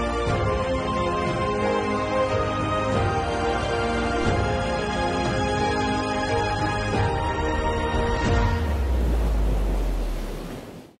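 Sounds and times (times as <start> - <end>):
surf washing on a beach: 8.4 - 11.0.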